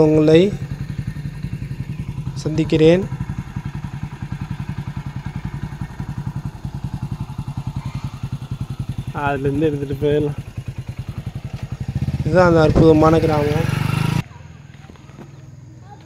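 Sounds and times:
motorcycle engine idling: 0.0 - 16.0.

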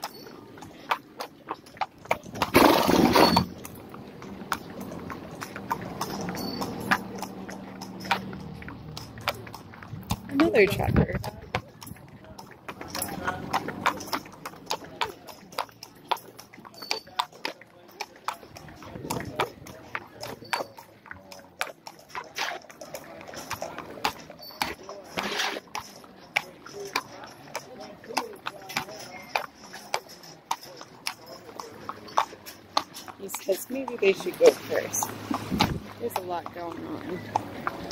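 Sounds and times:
horse hooves clip-clopping on street: 0.0 - 37.9
background voices: 17.6 - 37.9.

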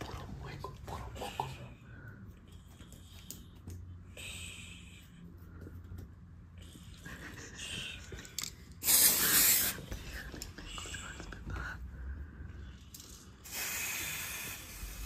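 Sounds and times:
aerosol spray can hissing: 8.8 - 9.9, 13.5 - 15.0.

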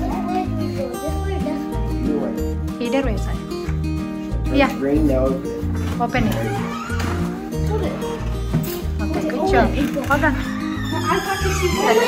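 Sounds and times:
plucked guitar background music: 0.0 - 12.0.

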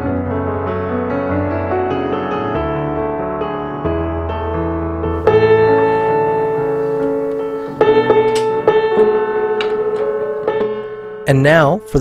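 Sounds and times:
piano note struck repeatedly: 0.0 - 12.0.

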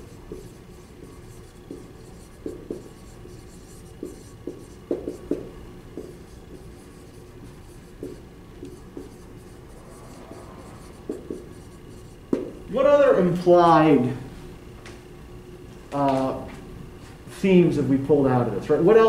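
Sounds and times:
marker writing on whiteboard: 0.0 - 12.6.

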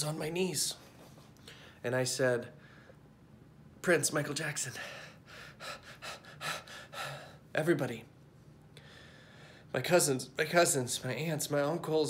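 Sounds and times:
man gasping breathily: 4.8 - 7.5.

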